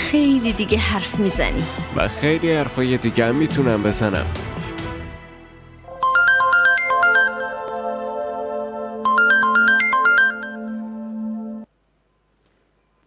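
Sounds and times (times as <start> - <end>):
mobile phone ringtone: 5.9 - 8.0, 9.0 - 11.6.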